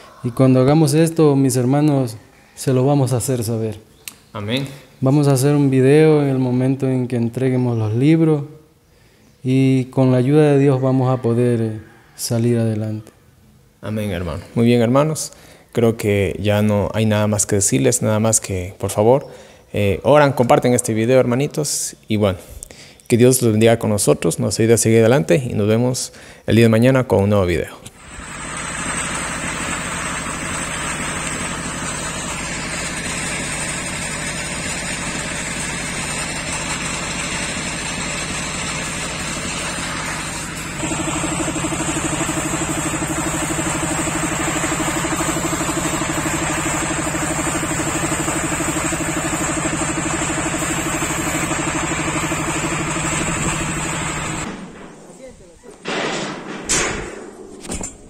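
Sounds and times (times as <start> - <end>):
steady low hum: 27.8 - 55.8
steady mechanical drone: 28.0 - 54.7.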